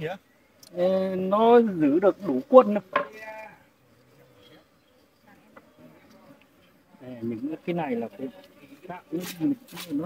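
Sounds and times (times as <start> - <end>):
faint buzzing of honeybees: 0.0 - 10.0.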